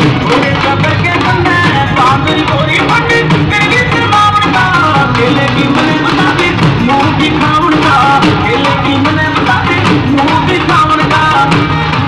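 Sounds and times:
folk song singing voice: 0.0 - 12.0
steady drum beat: 0.0 - 12.0.

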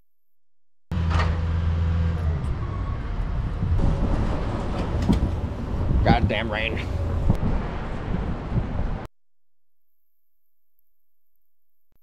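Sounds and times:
low vehicle rumble: 0.9 - 9.1.

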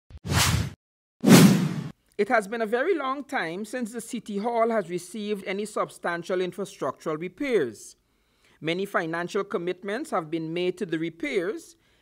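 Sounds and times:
whoosh sound effects: 0.2 - 1.9.

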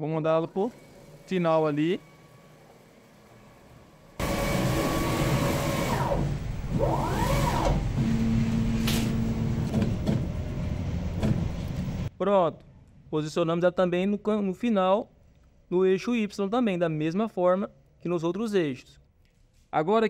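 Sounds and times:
machine motors whining: 0.2 - 12.1.

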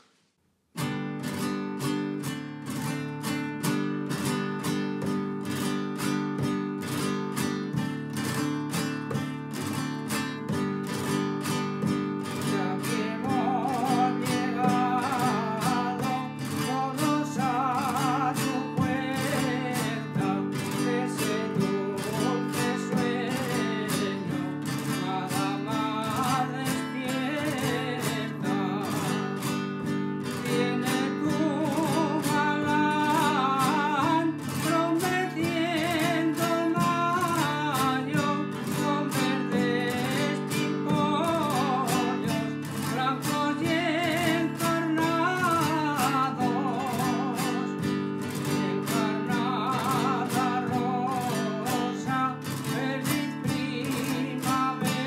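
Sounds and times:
acoustic guitar strumming: 0.8 - 55.0
elderly man singing: 2.8 - 55.0.

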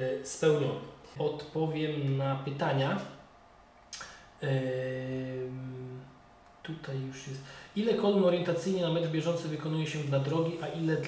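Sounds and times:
short click: 3.9 - 4.2
man humming: 4.4 - 6.0.

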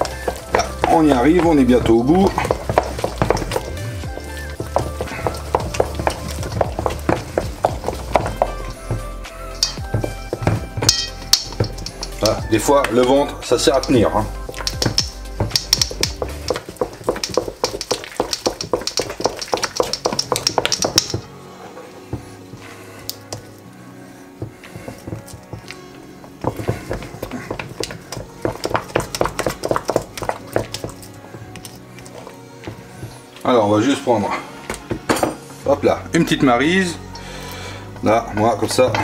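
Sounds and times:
wooden spoon knocking in metal bowl: 0.0 - 3.8, 4.6 - 21.3, 26.4 - 31.0
background music: 0.0 - 39.0.

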